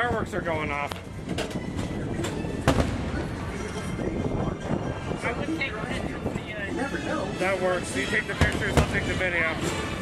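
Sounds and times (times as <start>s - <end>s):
steady rumble of a ride: 0.0s - 10.0s
fireworks bangs: 2.6s - 3.6s.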